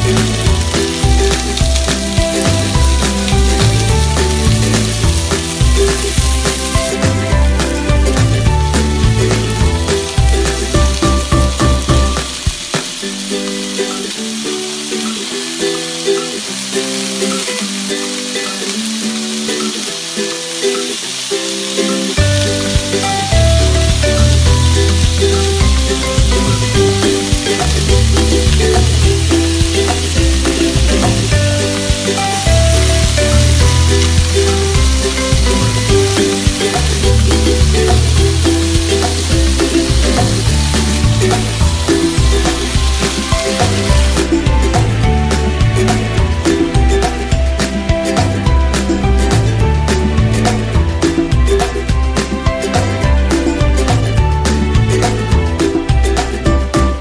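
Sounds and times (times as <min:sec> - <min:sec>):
background music with bass: 0:00.0 - 0:13.9, 0:22.2 - 0:57.0
food sizzling in oil: 0:00.0 - 0:56.4.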